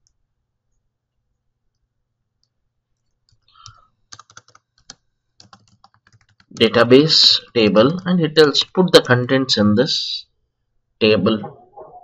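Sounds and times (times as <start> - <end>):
computer keyboard typing: 3.0 - 6.7.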